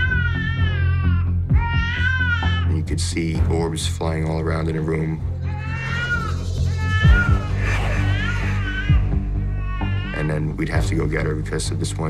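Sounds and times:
infant crying: 0.0 - 2.7, 5.4 - 10.6
background music: 0.0 - 12.0.

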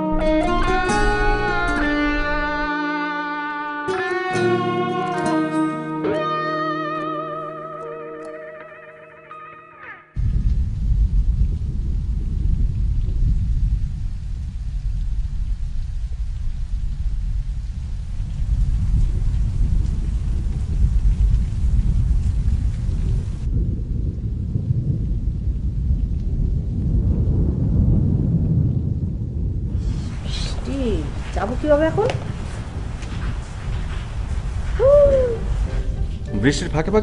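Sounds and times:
low rumble of thunder: 0.0 - 2.7, 10.2 - 36.3
heavy rain falling: 0.0 - 2.9, 10.2 - 37.0.

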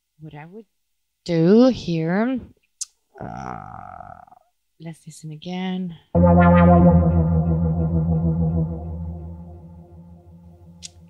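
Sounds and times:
sustained synth note: 6.2 - 10.8.

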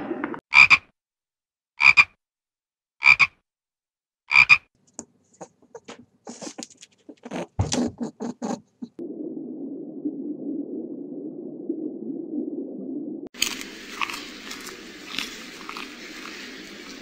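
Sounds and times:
frog croaking: 0.5 - 0.9, 1.8 - 2.2, 3.0 - 3.4, 4.3 - 4.7.

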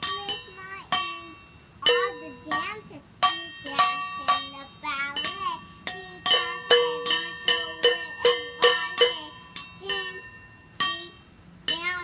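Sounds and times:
stick striking metal bowls: 0.0 - 12.0.

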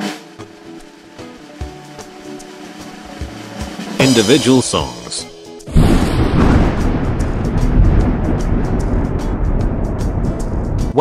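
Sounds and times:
drum roll: 3.1 - 11.0.

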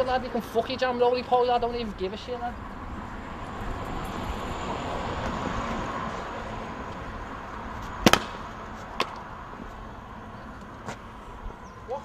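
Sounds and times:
street noise: 0.0 - 12.0
sharp cracks or knocks: 8.0 - 9.2.

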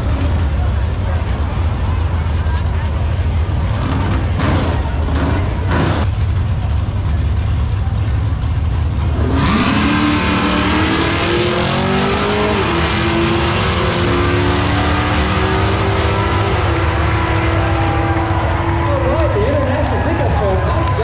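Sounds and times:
drag race cars idling: 0.0 - 21.0
race car engines accelerating: 0.0 - 21.0.

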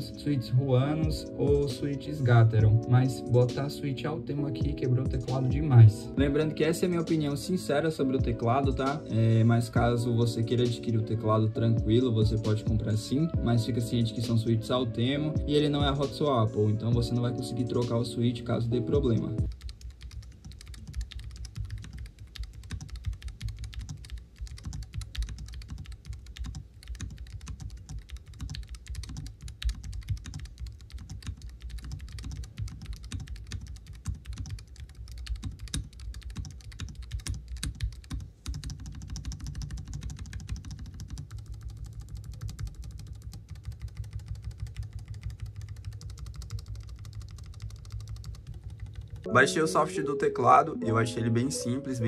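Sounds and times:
mechanical keyboard typing: 16.8 - 18.1, 18.7 - 49.3.

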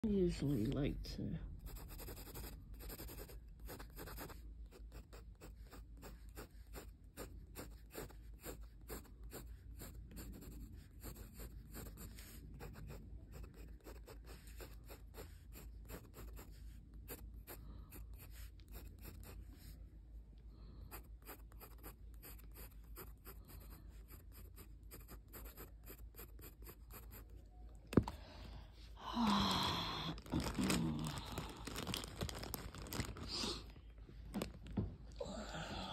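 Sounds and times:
pencil shading on paper: 1.6 - 19.7, 20.8 - 27.4.

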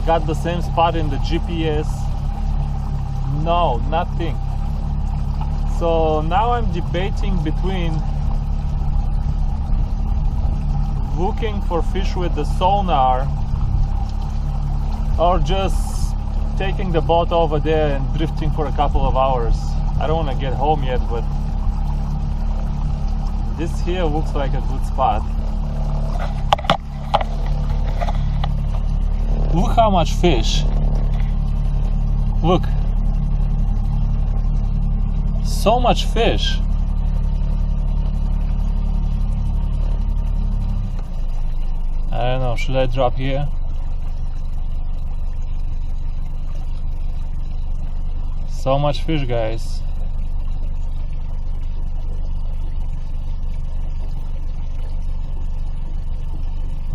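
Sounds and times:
outboard motor running: 0.0 - 56.9.

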